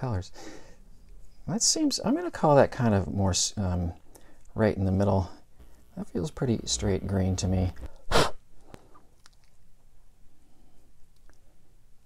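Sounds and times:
sharp breath noise: 0.4 - 0.9.

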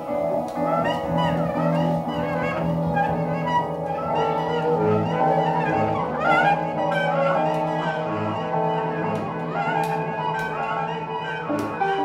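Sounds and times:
saxophone sustained notes: 0.0 - 12.0.

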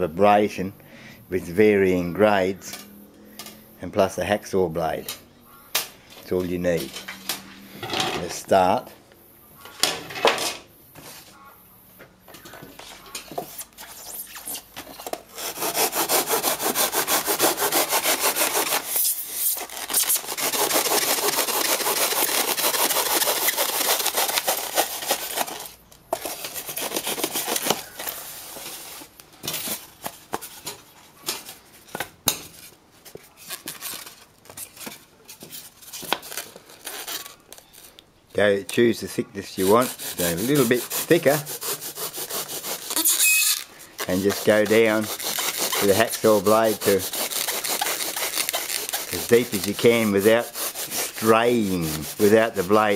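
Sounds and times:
hacksaw blade scraping foam: 13.3 - 30.2, 39.4 - 52.9.

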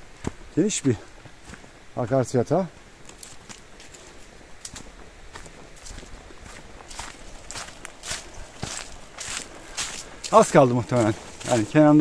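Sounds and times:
footsteps on muddy trail: 0.0 - 12.0.

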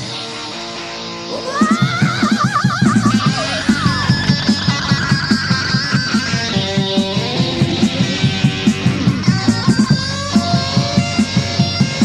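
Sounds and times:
electric guitar with fast vibrato: 0.0 - 12.0
drums driving beat: 1.4 - 12.0.

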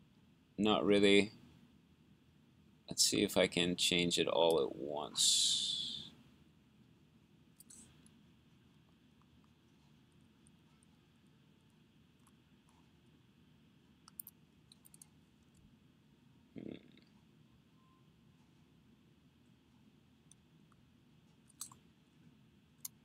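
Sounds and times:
computer keys clicking: 7.6 - 8.1, 14.0 - 15.6, 21.5 - 21.8.

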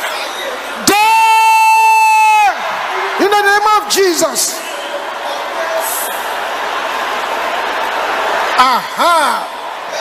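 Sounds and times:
crowd praying aloud: 0.0 - 10.0.

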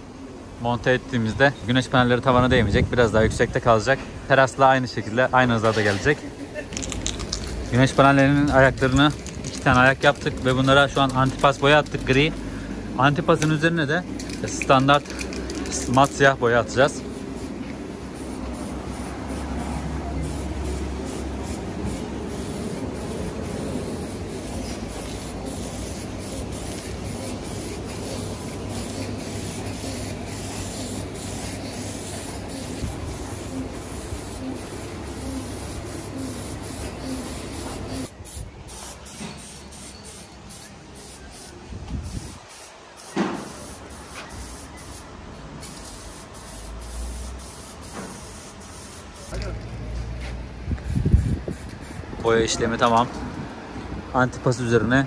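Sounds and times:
aerosol spray can hissing: 17.0 - 49.3, 50.8 - 52.0.

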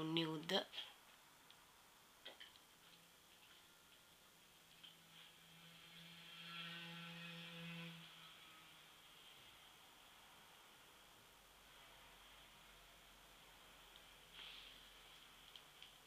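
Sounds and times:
faint hum with overtones: 0.0 - 16.0.

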